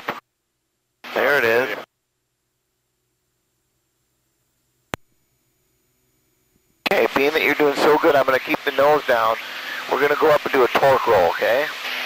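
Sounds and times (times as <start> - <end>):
faint low hum: 0.2 - 11.6.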